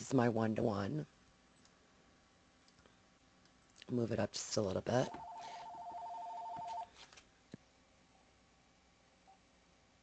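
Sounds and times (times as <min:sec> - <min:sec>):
electronic telephone ringing: 0:05.0 - 0:06.9.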